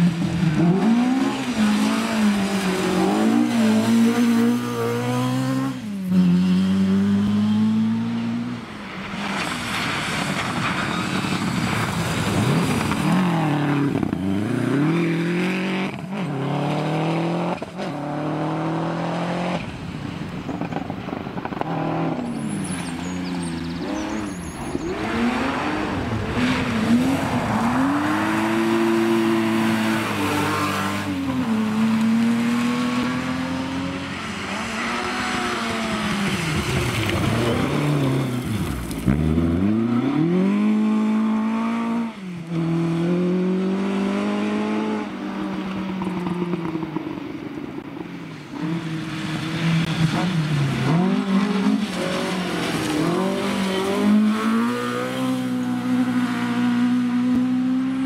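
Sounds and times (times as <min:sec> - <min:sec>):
rally car engines revving: 0:00.0 - 0:58.0.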